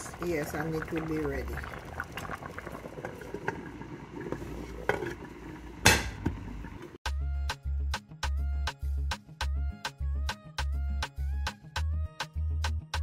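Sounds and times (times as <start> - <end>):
soup bubbling in a pot: 0.0 - 7.0
afrobeat music with heavy beat: 7.1 - 13.0.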